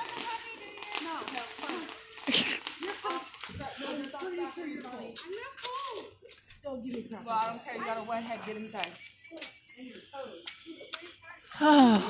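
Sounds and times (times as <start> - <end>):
faint voices talking: 0.0 - 12.0
footsteps on pavement: 0.0 - 12.0.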